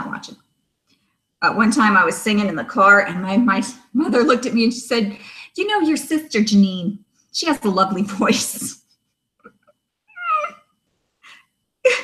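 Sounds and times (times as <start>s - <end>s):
woman whimpering: 10.2s - 10.6s
woman breathy laughter: 11.3s - 12.0s.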